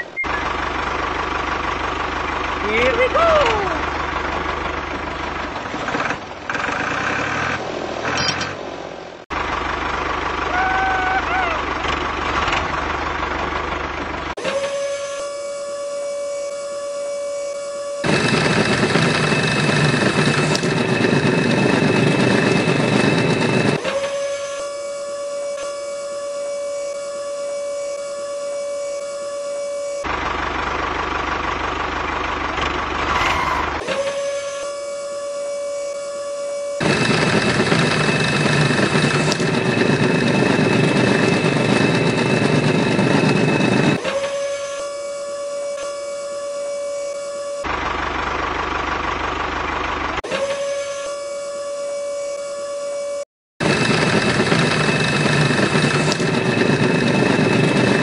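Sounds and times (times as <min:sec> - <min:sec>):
small motor whining: 0:14.4 - 0:30.2, 0:32.6 - 0:47.8, 0:50.2 - 0:58.0
auger boring into sand: 0:50.2 - 0:58.0.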